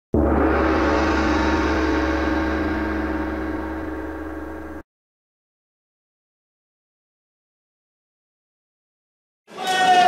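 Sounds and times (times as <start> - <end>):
gong-like metallic sting: 0.2 - 4.8
low rumble: 0.2 - 4.8.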